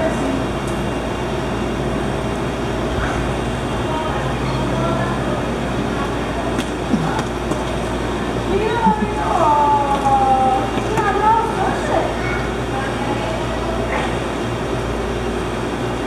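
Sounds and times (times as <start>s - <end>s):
faint voices: 3.6s - 14.9s.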